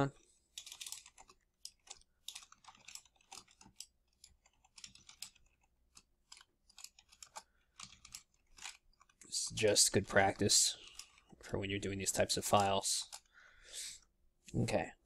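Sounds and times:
computer keyboard typing: 0.0s - 13.4s.

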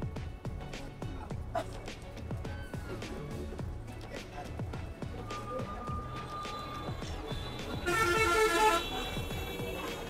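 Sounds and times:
background music with beat: 0.0s - 10.0s
bus horn blast: 6.5s - 10.0s.

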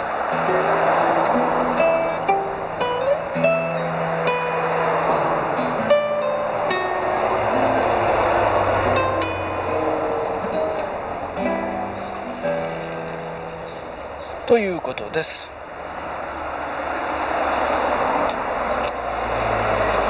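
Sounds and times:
classical guitar played solo: 0.0s - 14.4s
passing traffic rushing: 0.0s - 20.0s.

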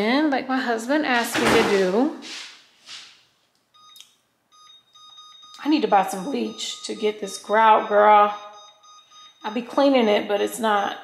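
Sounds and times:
short high beeps: 4.6s - 10.2s.

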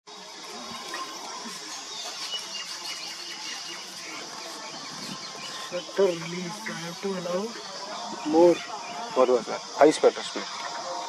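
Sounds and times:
steady high hiss: 0.1s - 11.0s
faint bird chirps: 0.5s - 11.0s.

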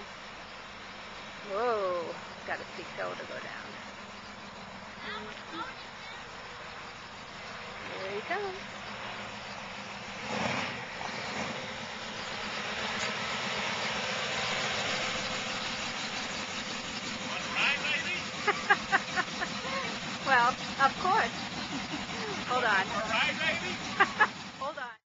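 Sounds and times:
pickup truck engine running: 0.0s - 25.0s
voices: 1.4s - 3.9s, 4.8s - 9.2s, 16.9s - 25.0s.

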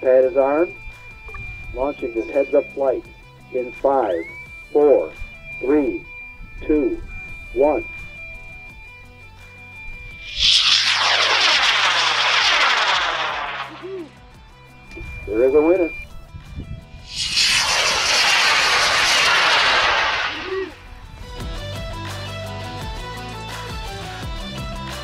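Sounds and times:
steady high beep: 0.5s - 3.0s, 4.8s - 8.8s
model rocket motor firing: 10.2s - 14.0s, 17.1s - 20.9s.

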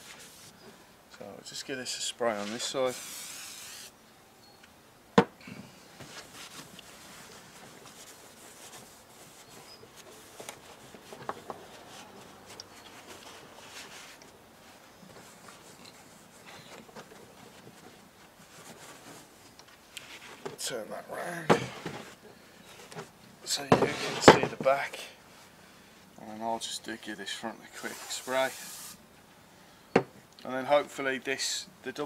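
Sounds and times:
cloth rubbing and wiping vinyl: 0.0s - 0.6s, 2.1s - 4.0s, 6.0s - 19.4s, 27.7s - 29.0s.

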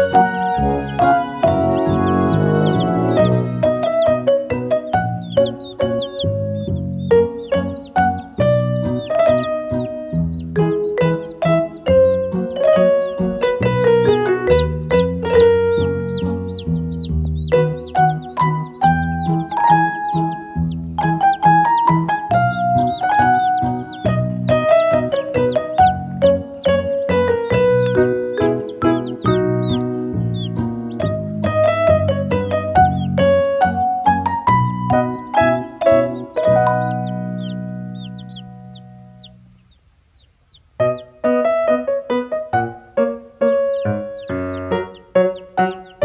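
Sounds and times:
background music: 0.0s - 39.4s, 40.8s - 46.0s
baby chicks peeping: 0.0s - 46.0s.

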